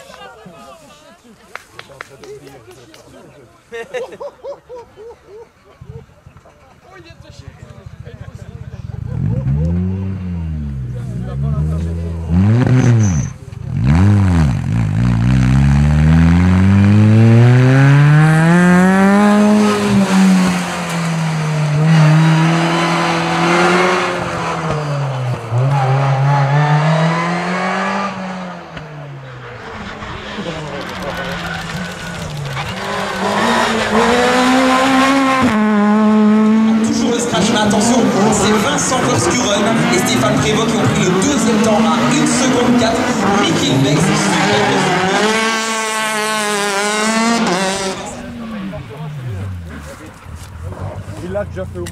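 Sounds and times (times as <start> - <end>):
rally car engine revving: 8.1 - 51.9
tyre noise: 28.7 - 46.2.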